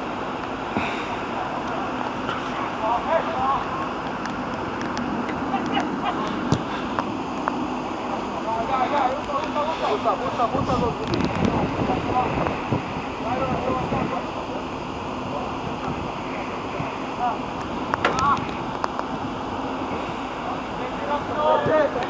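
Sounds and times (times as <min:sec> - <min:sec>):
wind rushing: 0:10.4 - 0:14.2
players shouting: 0:20.6 - 0:22.0.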